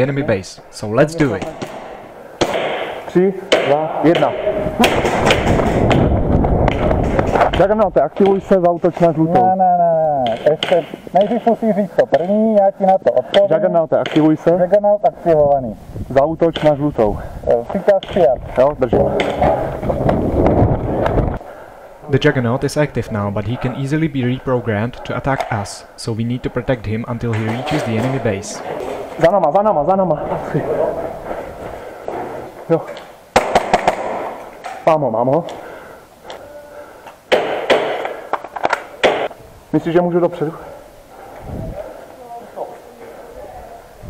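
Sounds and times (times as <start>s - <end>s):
pistol shots echoing: 1.3s - 7.0s, 33.3s - 34.5s, 37.3s - 39.3s
wind buffeting microphone: 4.2s - 8.6s, 15.2s - 21.6s, 29.6s - 32.6s, 41.3s - 42.0s.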